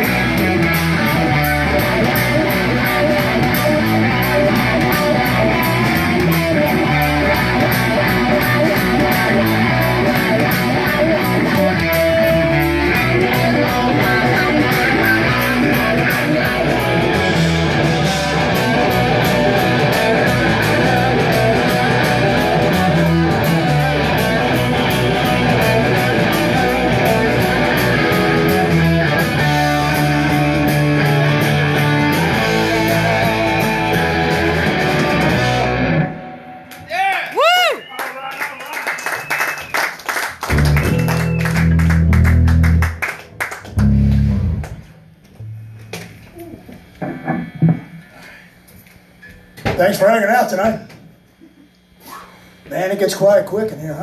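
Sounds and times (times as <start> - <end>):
live rock band playing: 0.0 - 36.8, 40.4 - 45.0.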